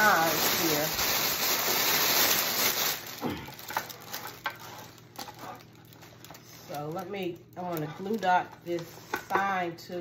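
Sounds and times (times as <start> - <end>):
cellophane bag crinkling: 0.0 - 8.6.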